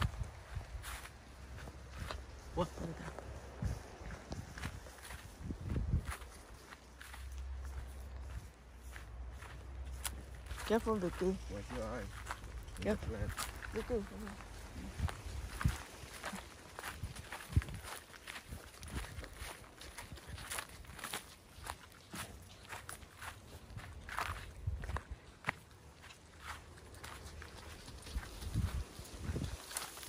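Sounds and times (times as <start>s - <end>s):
footsteps on sand and twigs: 0.0s - 30.0s.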